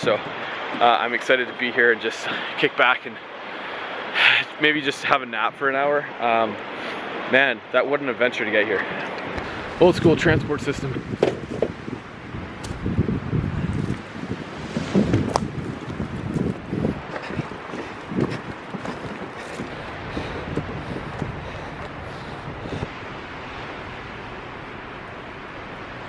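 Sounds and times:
wind buffeting microphone: 9.0s - 26.0s
sharp knocks: 11.2s - 11.8s.

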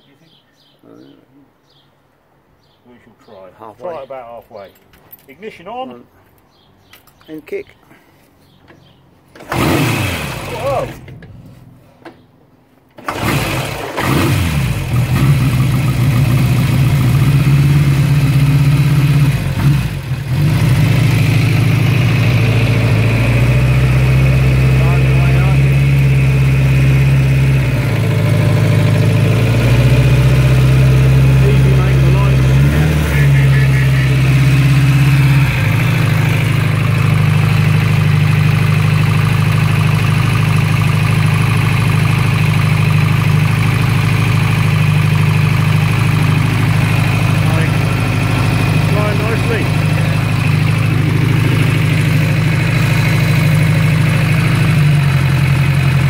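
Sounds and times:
motorcycle engine starting and idling: 8.7s - 12.3s, 12.9s - 56.0s.

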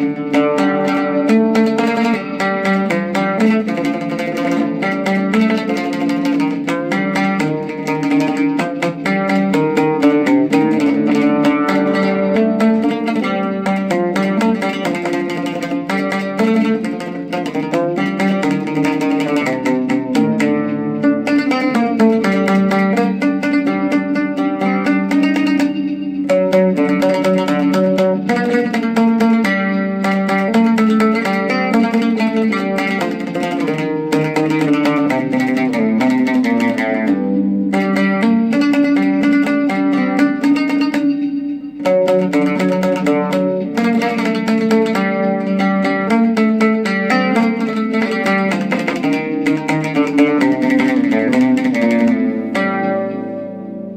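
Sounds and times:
oud melody of plucked notes: 0.0s - 53.9s.

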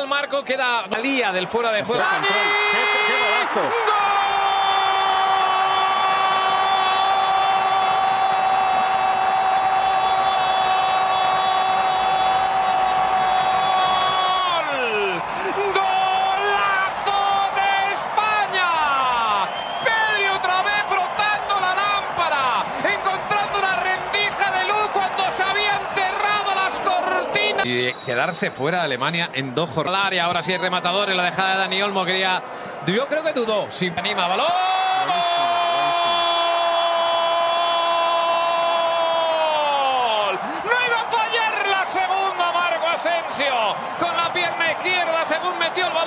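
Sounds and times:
stadium crowd cheering: 0.0s - 46.0s
commentator shouting excitedly: 1.0s - 4.9s.

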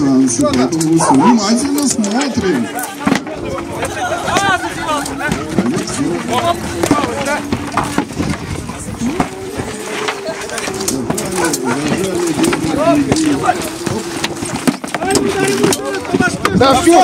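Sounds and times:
people shouting: 0.9s - 17.0s
weapons knocking on wooden shields: 1.6s - 3.4s, 4.3s - 17.0s.

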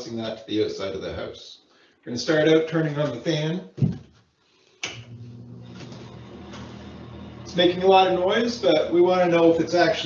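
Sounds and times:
exhaust fan humming: 4.8s - 10.0s.

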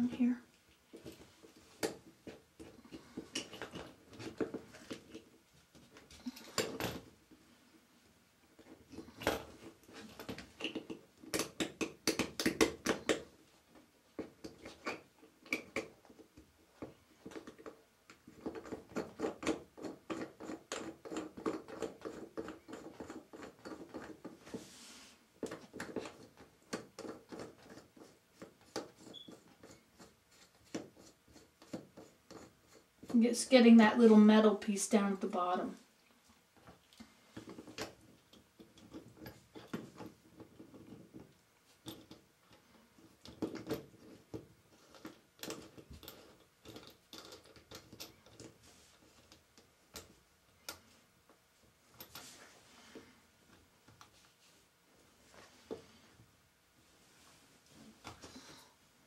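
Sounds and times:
small plumbing parts clicking and scraping: 0.2s - 7.1s, 8.5s - 24.7s, 25.3s - 33.2s, 36.6s - 54.4s.

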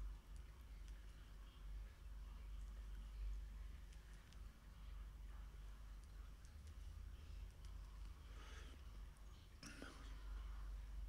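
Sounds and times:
steady low hum: 0.0s - 11.0s
soft whisper-like breath: 7.2s - 11.0s.

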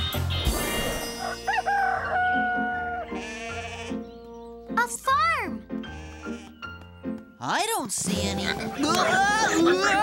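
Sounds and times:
background music: 0.0s - 10.0s
cartoon rooster crowing: 1.1s - 3.2s.

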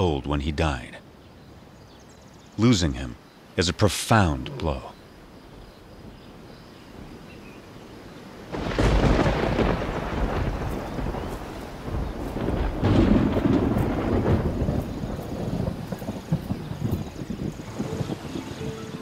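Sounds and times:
thunder rumbling: 8.5s - 19.0s.

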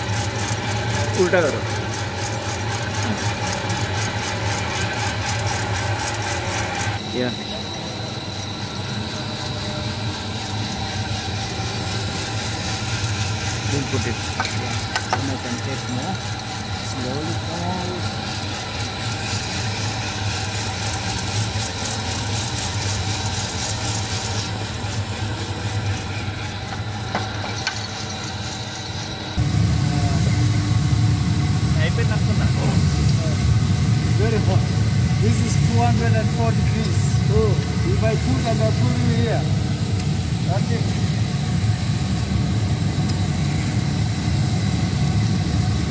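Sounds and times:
roaster motor and fan hum: 0.0s - 45.9s
roasted beans being stirred: 10.7s - 28.0s.

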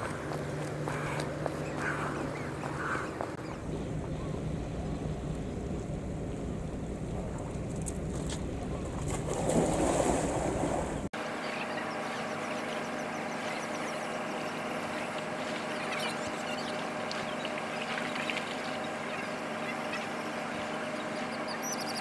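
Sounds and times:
small birds chirping: 0.0s - 5.0s, 11.2s - 22.0s
steady mechanical hum: 0.0s - 22.0s.

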